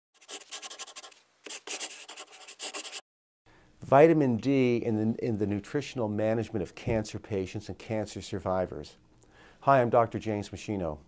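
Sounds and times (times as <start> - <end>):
scratchy rubbing strokes: 0.2 - 3.0.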